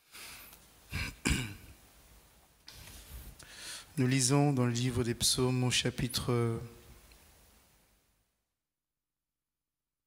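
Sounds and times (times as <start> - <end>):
man clearing his throat: 0.9 - 1.8.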